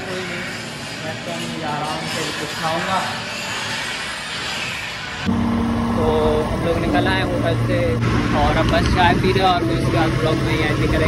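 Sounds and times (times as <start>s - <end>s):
vehicle engine humming: 5.2s - 11.0s.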